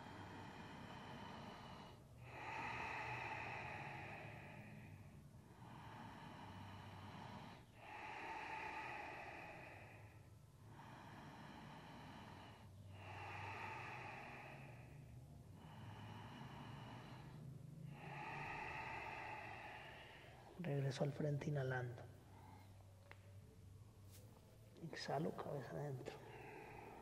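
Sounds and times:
man breathing deeply: 0.0s - 21.1s, 25.3s - 27.0s.

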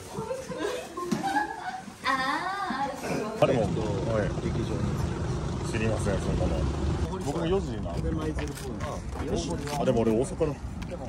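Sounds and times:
people chatting: 0.0s - 11.0s
low rumble: 3.6s - 8.2s.

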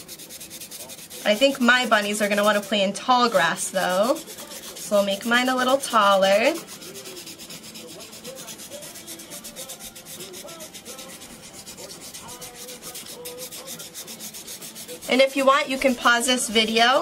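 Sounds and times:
marker scratching on paper: 0.0s - 17.0s.

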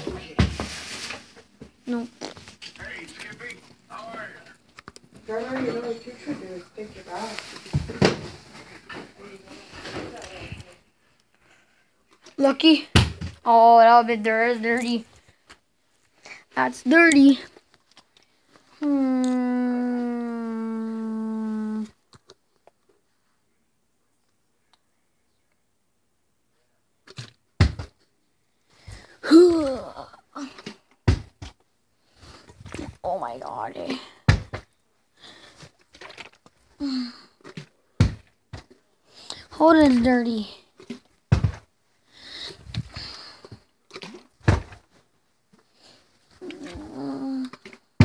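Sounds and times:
rustling and handling noise: 0.0s - 13.4s
person humming: 18.8s - 22.0s, 46.4s - 47.6s.

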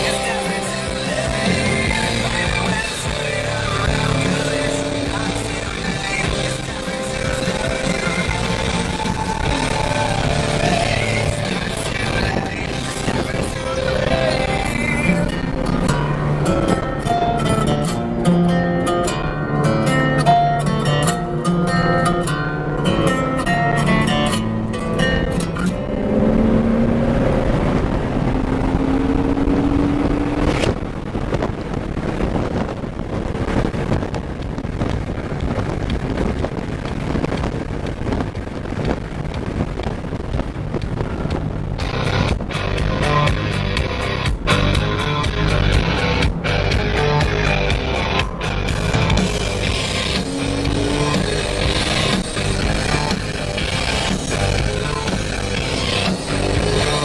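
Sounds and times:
car engine running: 0.0s - 57.0s
plucked guitar music: 0.0s - 57.0s
road noise: 0.0s - 57.0s
rushing wind: 0.0s - 57.0s.

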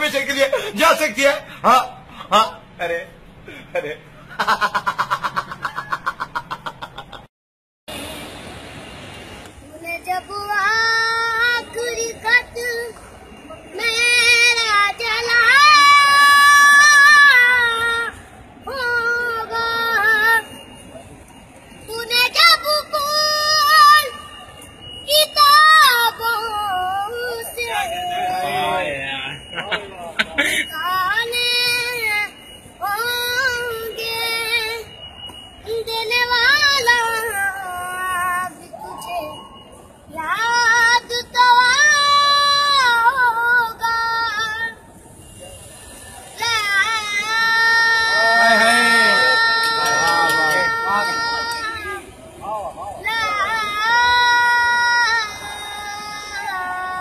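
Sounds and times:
high-pitched voice singing: 46.4s - 52.1s, 53.0s - 57.0s.

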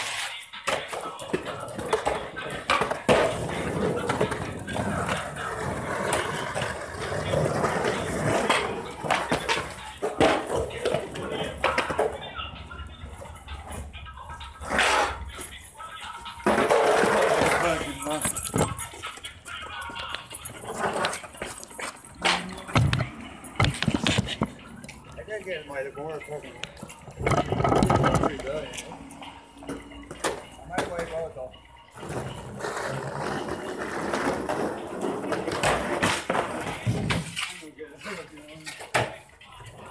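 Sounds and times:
skateboard wheels rolling on asphalt: 0.0s - 22.0s, 31.7s - 37.4s
people talking indistinctly: 0.1s - 33.4s, 37.3s - 39.9s.

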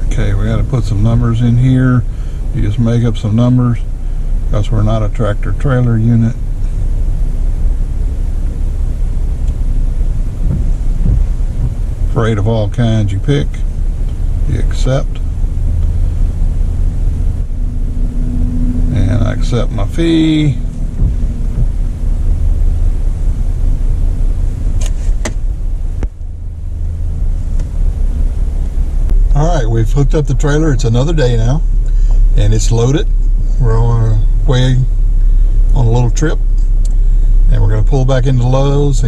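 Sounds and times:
car engine idling: 0.0s - 39.0s.

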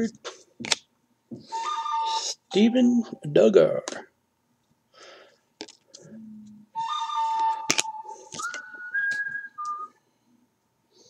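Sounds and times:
whistle-like tune: 1.4s - 3.1s, 6.8s - 10.0s
cards being handled: 7.7s - 8.6s.

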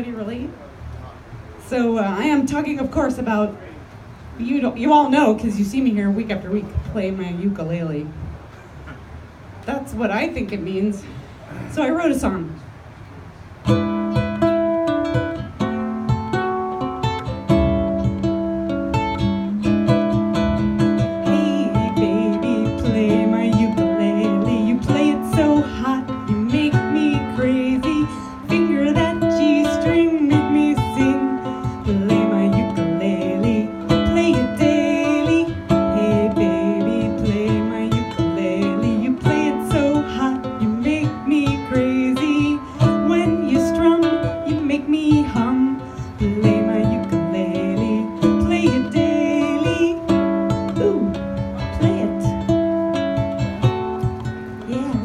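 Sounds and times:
ukulele blues strumming: 13.1s - 55.0s.

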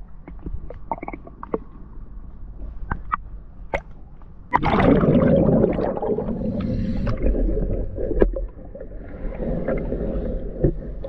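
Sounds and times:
underwater gurgling rumble: 0.0s - 3.8s, 4.4s - 11.0s.

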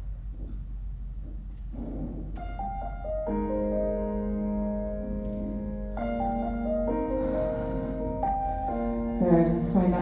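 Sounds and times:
low rumble of room noise: 0.0s - 10.0s.

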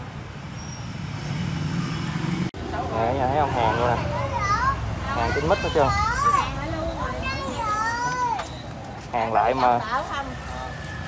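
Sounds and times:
faint street noise: 0.0s - 11.0s.

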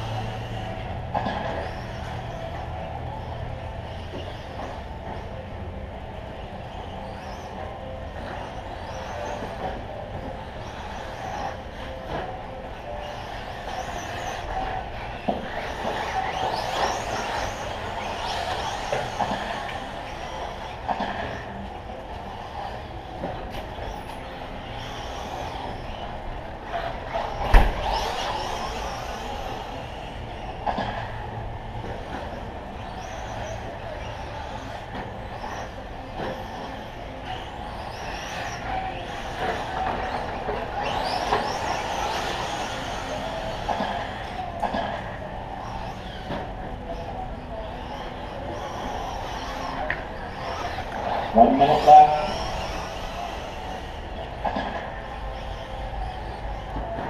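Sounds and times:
toy truck motors whining: 0.0s - 57.0s.

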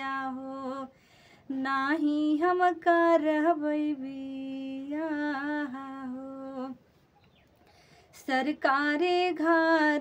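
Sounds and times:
woman singing unaccompanied: 0.0s - 7.0s, 8.1s - 10.0s.

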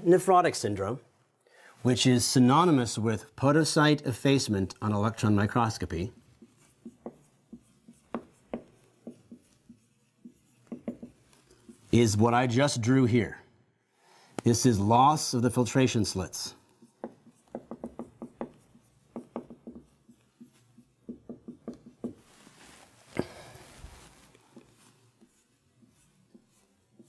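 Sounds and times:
marker writing on whiteboard: 4.2s - 12.3s, 15.6s - 22.4s, 24.0s - 27.0s.

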